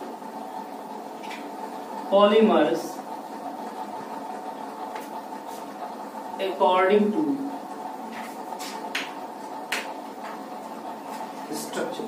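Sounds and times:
steady machine hum: 0.0 - 12.0.

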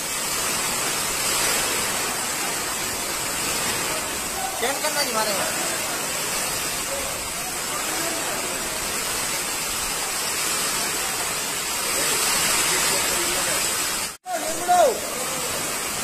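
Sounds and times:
floodwater rushing: 0.0 - 16.0
heavy rain: 0.0 - 16.0.

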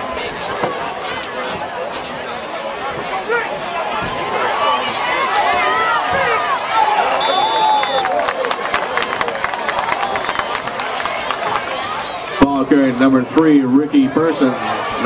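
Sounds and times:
crowd yelling and cheering: 0.0 - 15.0
referee whistle: 7.1 - 8.1
clapping: 7.7 - 11.7.

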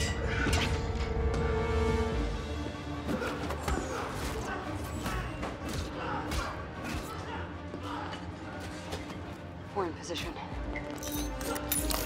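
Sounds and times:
low tense music score: 0.0 - 12.0.

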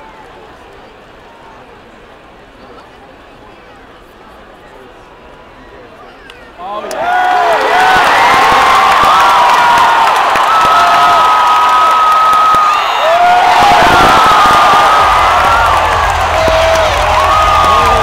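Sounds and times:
crowd cheering loudly: 6.6 - 18.0
people yelling and whooping: 6.9 - 18.0.

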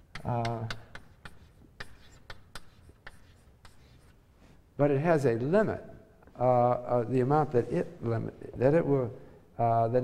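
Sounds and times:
chalk tapping and scratching: 0.0 - 4.6.

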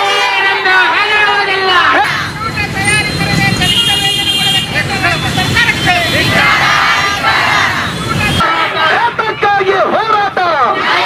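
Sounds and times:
crowd of protesters shouting: 0.0 - 3.6, 5.4 - 11.0
street traffic rumble: 0.0 - 11.0
vehicle horn: 2.8 - 6.6.

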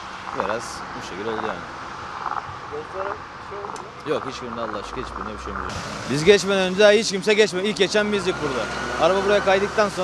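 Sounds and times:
road traffic hum: 0.0 - 10.0.

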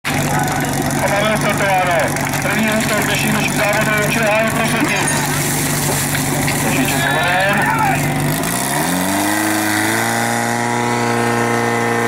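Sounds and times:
pump engine running: 0.0 - 12.0
people's voices: 0.1 - 8.2.

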